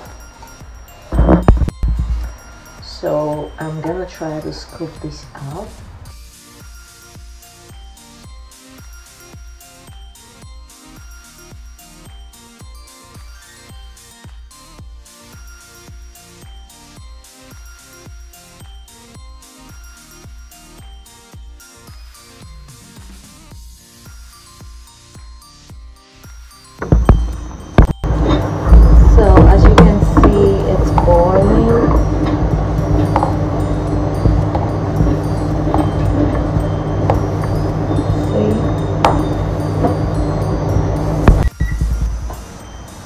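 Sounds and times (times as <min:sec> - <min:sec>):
soft background music: 0:00.0 - 0:43.0
loud steady low rumble: 0:26.9 - 0:42.4.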